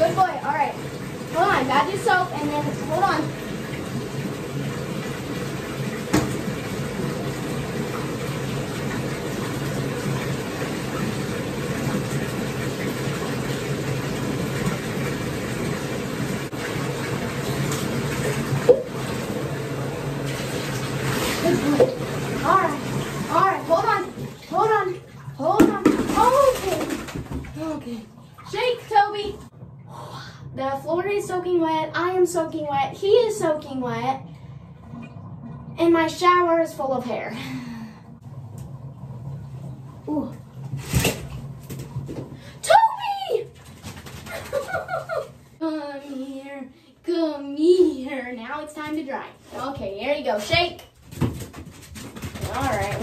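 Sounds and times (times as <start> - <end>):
water running in bathtub: 0.0 - 53.0.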